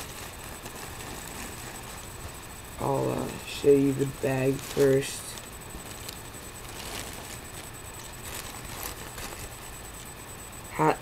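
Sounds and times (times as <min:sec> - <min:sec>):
plastic bag rustling: 0:00.0 - 0:10.2
microphone hiss: 0:00.0 - 0:11.0.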